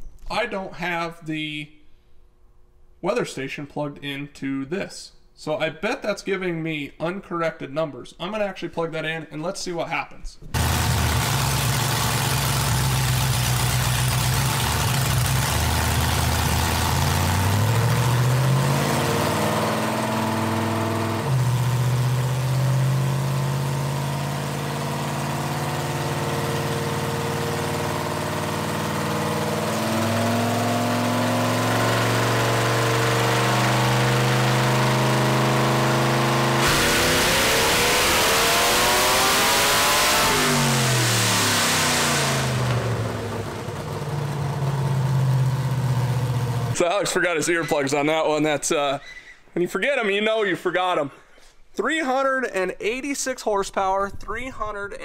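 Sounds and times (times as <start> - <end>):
vone engine revving on a dyno: 10.6 - 46.8.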